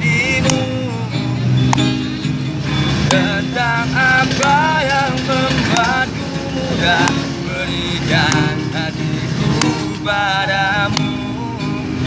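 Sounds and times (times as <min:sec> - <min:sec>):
acoustic guitar strumming: 0:00.0 - 0:12.0
men singing pop ballad: 0:03.1 - 0:12.0.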